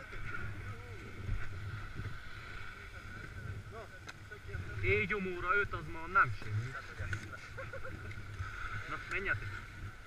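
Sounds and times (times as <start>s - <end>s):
wind rumble on microphone: 0.0s - 10.0s.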